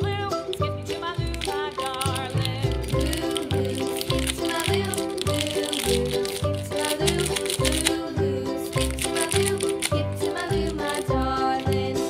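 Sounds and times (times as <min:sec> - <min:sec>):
music with bass beat and shaker: 0:00.0 - 0:12.0.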